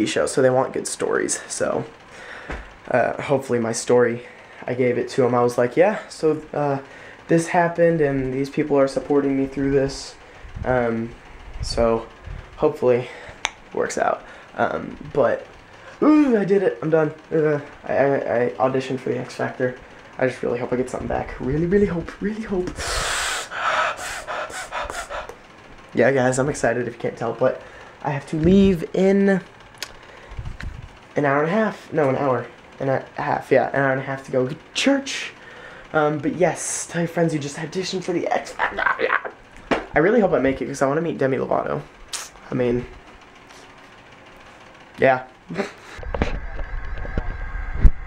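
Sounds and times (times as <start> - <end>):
man gasping and breathing: 22.8 - 25.4.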